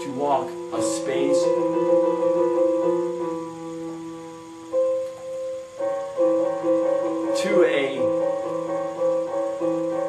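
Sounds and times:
electronic keyboard notes: 0:00.0 - 0:10.0.

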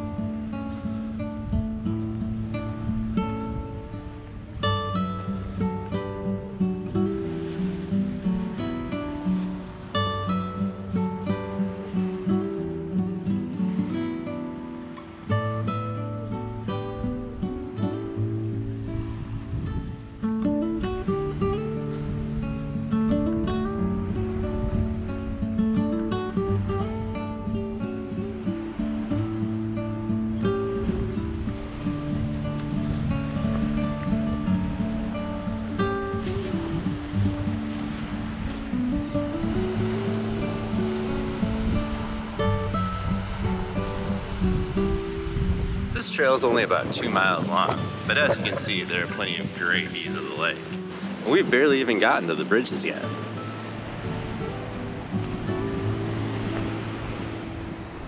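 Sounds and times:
acoustic guitar music: 0:00.0 - 0:58.0.

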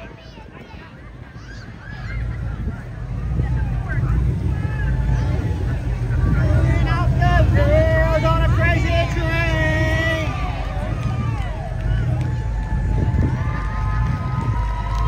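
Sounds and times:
crowd voices: 0:00.0 - 0:15.0
car engine rumbling past: 0:01.8 - 0:15.0.

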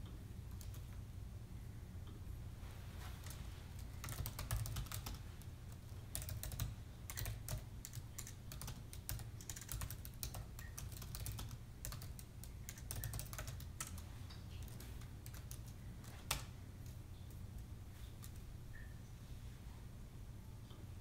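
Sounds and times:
low steady hum: 0:00.0 - 0:21.0
laptop keyboard typing: 0:00.5 - 0:01.0, 0:03.2 - 0:17.4.

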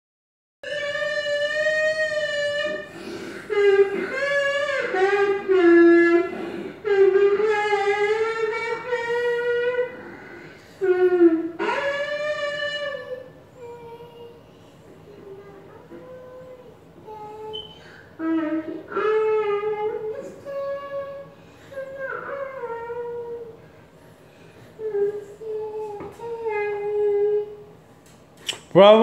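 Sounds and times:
child singing into microphone: 0:00.6 - 0:23.6, 0:24.7 - 0:27.8.

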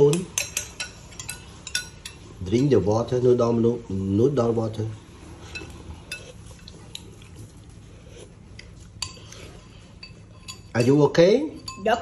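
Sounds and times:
metal spoon clinking ceramic bowl: 0:00.0 - 0:02.7, 0:10.0 - 0:12.0.

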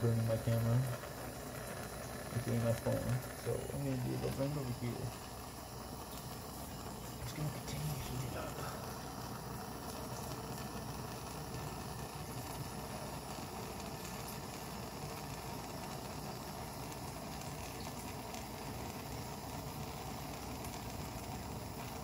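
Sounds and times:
gas torch flame burning: 0:00.0 - 0:22.0.

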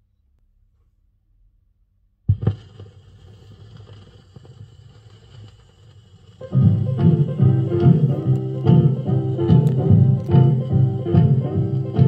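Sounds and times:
vinyl crackle: 0:02.3 - 0:12.0
vinyl surface hiss: 0:02.3 - 0:12.0.

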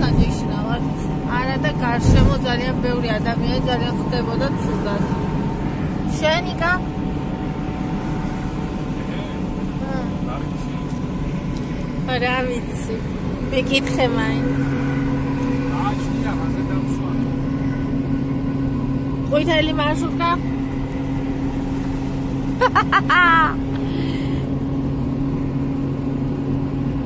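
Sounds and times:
low engine hum: 0:00.0 - 0:27.0
road noise in car cabin: 0:00.0 - 0:27.0.

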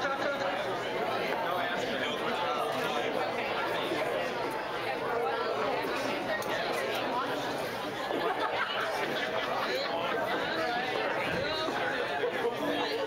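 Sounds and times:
guests chattering: 0:00.0 - 0:13.0.

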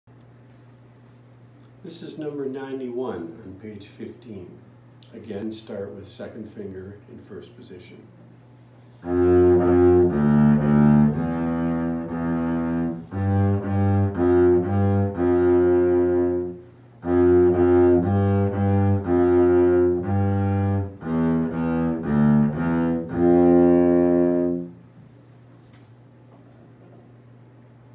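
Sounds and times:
bowed double bass: 0:09.0 - 0:24.8.

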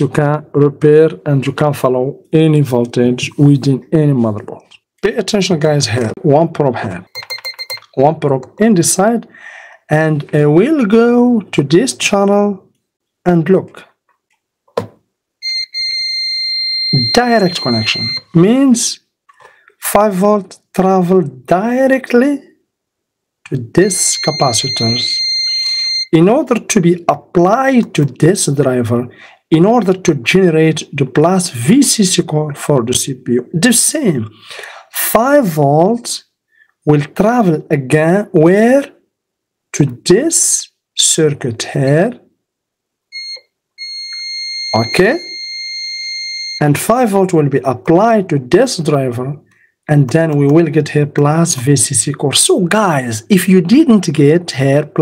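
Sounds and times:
multimeter continuity beep: 0:07.1 - 0:08.0, 0:15.4 - 0:18.3, 0:23.8 - 0:26.2, 0:43.1 - 0:46.6.

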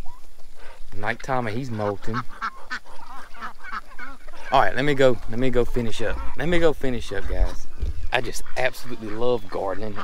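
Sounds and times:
chickens calling: 0:00.0 - 0:10.0
ducks calling: 0:00.0 - 0:10.0
turkeys calling: 0:00.0 - 0:10.0.

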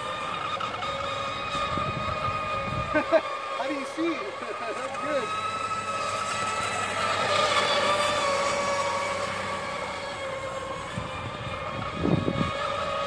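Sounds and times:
racing boat motors whining: 0:00.0 - 0:13.0.

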